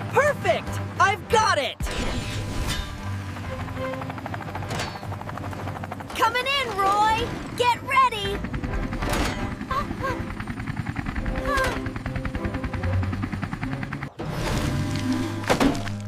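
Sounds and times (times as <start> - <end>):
background music: 0.0 - 16.0
helicopter rotor chop: 0.0 - 16.0.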